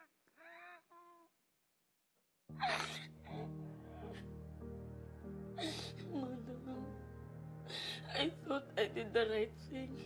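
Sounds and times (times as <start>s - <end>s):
slow background music: 2.5s - 10.0s.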